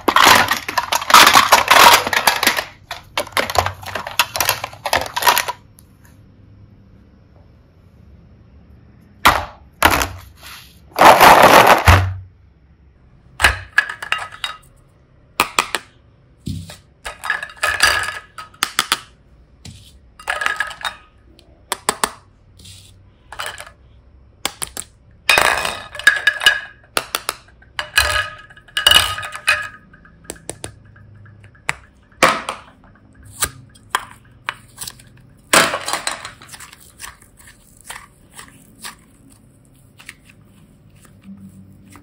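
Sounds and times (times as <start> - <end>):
plastic toys clacking together: 0.0 - 5.6, 17.0 - 19.1, 24.4 - 39.3
toys rattling in plastic basket: 0.0 - 5.6.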